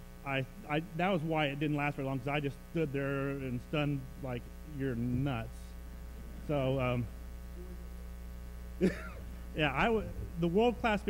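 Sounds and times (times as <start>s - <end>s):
electrical mains hum: 0.0s - 11.0s
person speaking: 0.3s - 7.9s, 9.5s - 11.0s.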